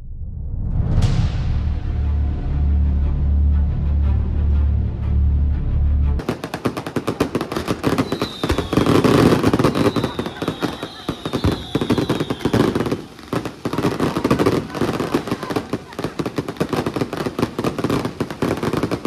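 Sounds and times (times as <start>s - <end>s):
fireworks crackling bangs: 6.2s - 19.0s
faint falling whistles: 7.9s - 13.0s.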